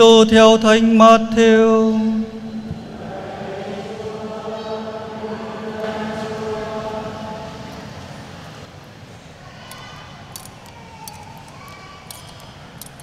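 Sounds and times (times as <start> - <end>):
congregation chanting in unison: 0.1 - 8.7
single voice chanting: 1.6 - 8.0.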